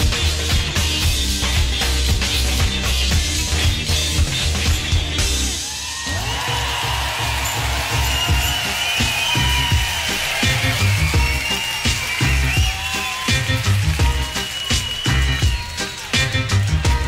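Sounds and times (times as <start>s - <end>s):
live rock band playing: 10.4s - 17.0s.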